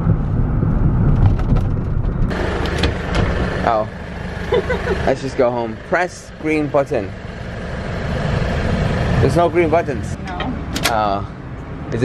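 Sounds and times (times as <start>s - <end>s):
car road rumble: 0.0s - 12.0s
outdoor street noise: 0.0s - 12.0s.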